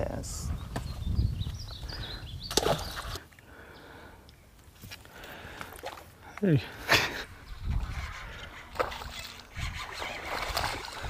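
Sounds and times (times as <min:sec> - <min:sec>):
wind buffeting microphone: 0:00.0 - 0:03.2, 0:07.2 - 0:11.0.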